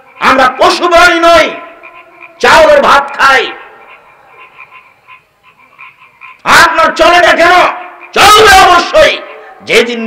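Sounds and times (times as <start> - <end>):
rhythmic frog croaking: 0.0 - 10.0
man speaking over a microphone: 0.2 - 1.8, 2.4 - 3.7, 6.4 - 10.0.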